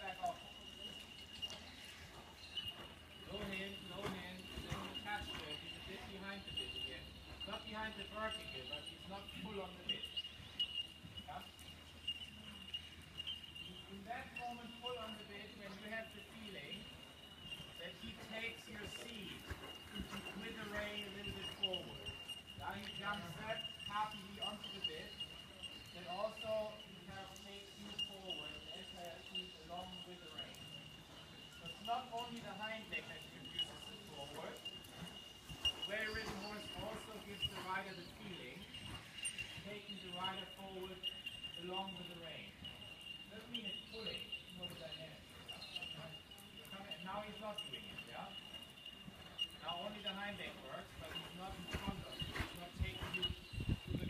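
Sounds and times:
insects chirring: 0.0 - 54.0
hoofbeats on sand: 0.1 - 13.1, 13.7 - 54.0.

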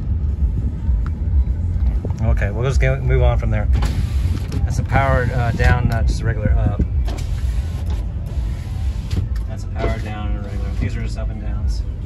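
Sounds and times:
diesel engine idling: 0.0 - 12.0
power window motor whir: 7.0 - 10.9.

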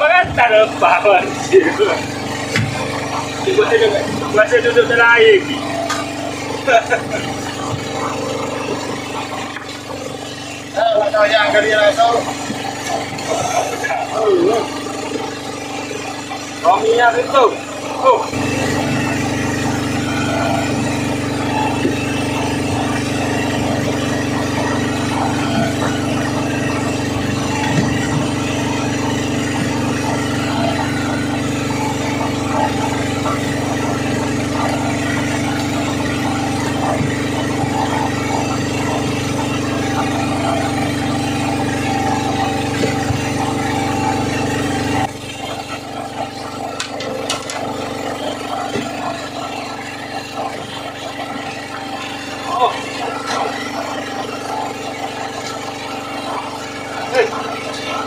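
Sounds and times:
boat engine droning: 0.0 - 58.0.

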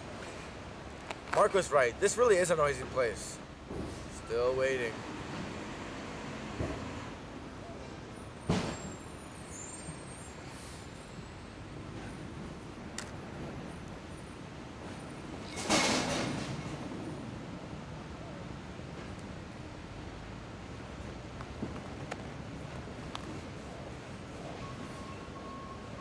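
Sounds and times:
traffic noise: 0.0 - 26.0
air brake hissing: 8.1 - 11.2.

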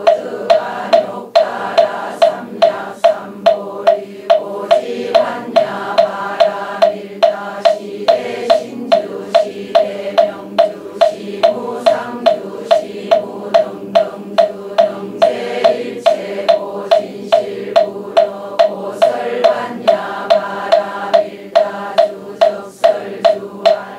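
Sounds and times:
congregation chanting in unison: 0.0 - 23.9
wooden fish hollow knocks: 0.0 - 23.9.

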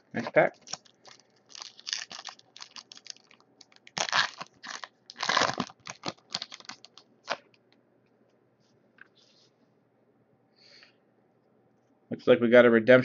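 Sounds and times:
foil wrapper crinkling: 0.0 - 7.5.

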